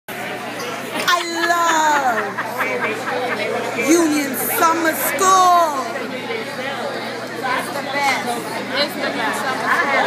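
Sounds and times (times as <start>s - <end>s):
crowd chatter: 0.1s - 10.0s
people talking: 1.0s - 6.6s.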